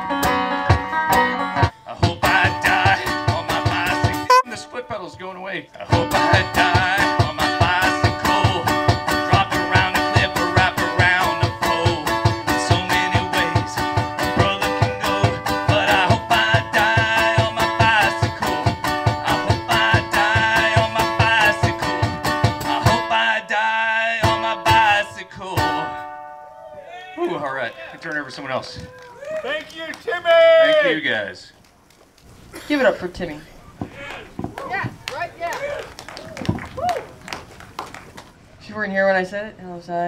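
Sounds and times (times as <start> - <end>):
steady thumping beat: 3.3 - 4.5, 33.8 - 35.2
crowd whooping and cheering: 26.4 - 31.0, 33.9 - 38.2.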